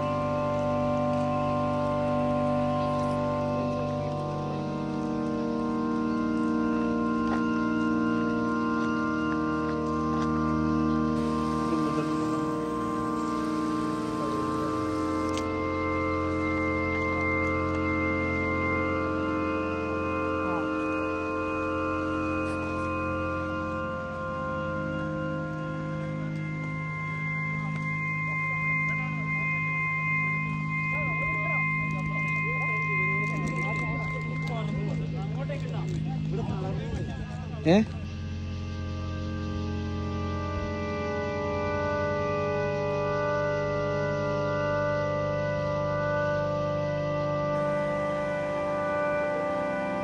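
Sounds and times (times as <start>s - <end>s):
slow sustained organ chords: 0.0s - 50.0s.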